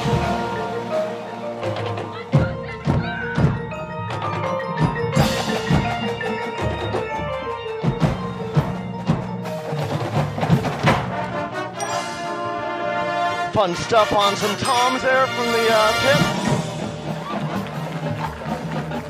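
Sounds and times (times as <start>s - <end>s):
marimba and bell notes: 0.0s - 10.9s, 11.7s - 13.3s, 14.5s - 18.2s.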